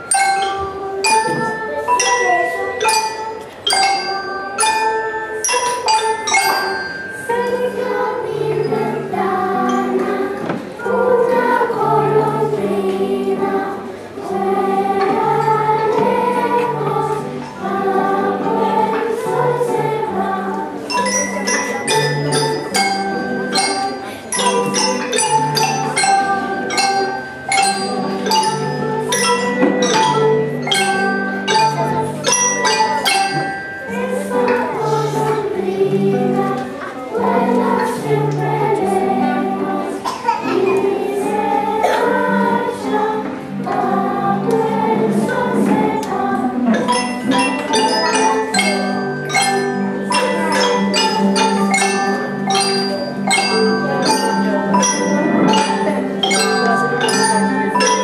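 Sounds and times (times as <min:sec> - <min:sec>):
children's choir singing: 0:00.0 - 0:58.0
held low accompaniment notes: 0:00.0 - 0:58.0.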